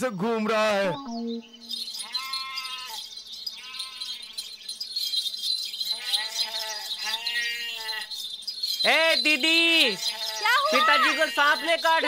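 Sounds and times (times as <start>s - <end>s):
goats bleating: 2.0s - 3.0s, 6.0s - 8.1s, 9.5s - 12.0s.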